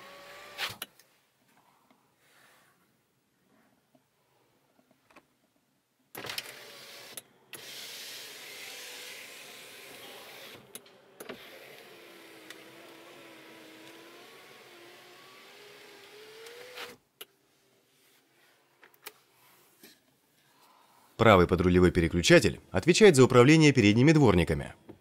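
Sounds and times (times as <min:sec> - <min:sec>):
electric window motor whine: 0:06.2 - 0:17.0.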